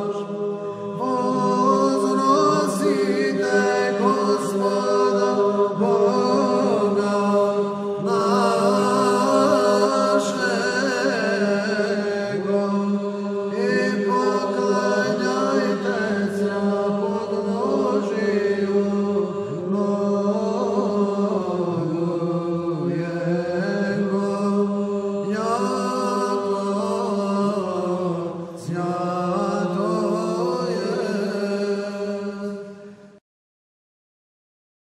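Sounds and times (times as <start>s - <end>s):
male choir chanting over a drone: 0.0s - 33.2s.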